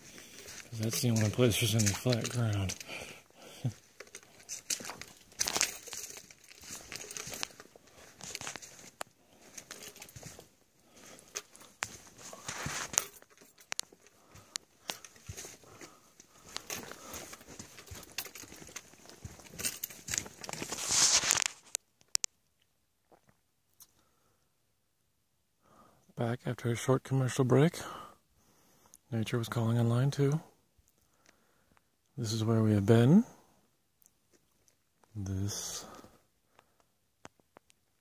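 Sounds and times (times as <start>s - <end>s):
footsteps crunching on gravel: 0.0s - 21.7s
rustling: 0.0s - 21.8s.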